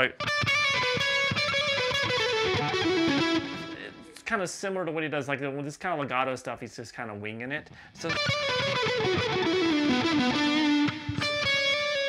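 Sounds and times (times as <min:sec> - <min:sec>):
distorted electric guitar: 0:00.0 - 0:04.2, 0:08.0 - 0:12.0.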